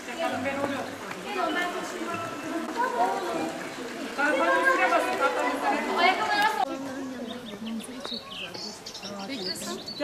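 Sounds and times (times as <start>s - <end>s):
people talking at once: 0.0s - 10.0s
children's high voices: 1.3s - 6.9s.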